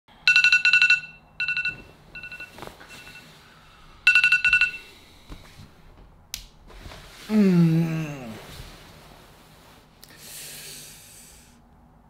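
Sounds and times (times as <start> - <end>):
electronic alarm beeping: 0.3 - 3.3, 4.1 - 4.9.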